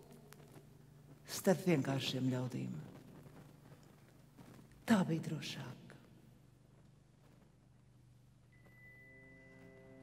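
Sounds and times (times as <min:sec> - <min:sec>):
faint high sustained music note: 0:08.5 - 0:10.0.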